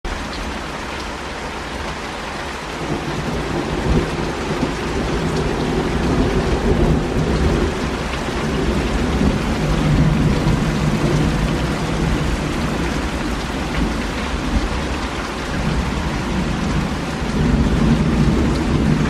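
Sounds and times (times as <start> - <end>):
heavy rain on leaves and pavement: 0.0 - 19.0
thunder rumbling: 2.8 - 19.0.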